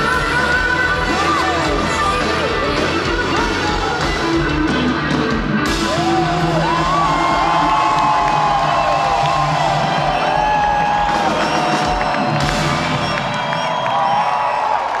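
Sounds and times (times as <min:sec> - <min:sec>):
live rock band playing: 0:00.0 - 0:14.0
crowd cheering and whooping: 0:05.6 - 0:15.0.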